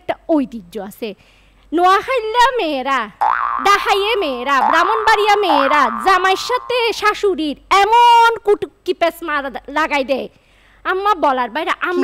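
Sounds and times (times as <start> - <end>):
woman speaking into a microphone: 0.0 - 12.0.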